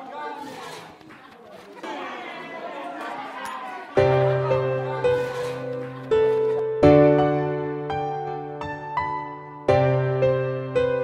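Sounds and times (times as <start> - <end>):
students talking over one another: 0.0 - 6.0.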